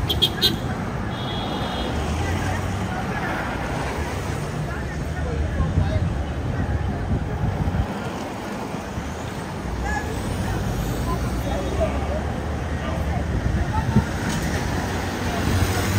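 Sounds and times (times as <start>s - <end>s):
traffic rumble: 0.0s - 15.9s.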